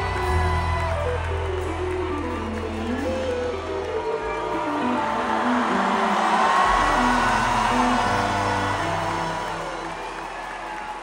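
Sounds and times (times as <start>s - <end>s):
crowd whooping and cheering: 0.0s - 11.0s
music over arena sound system: 0.0s - 11.0s.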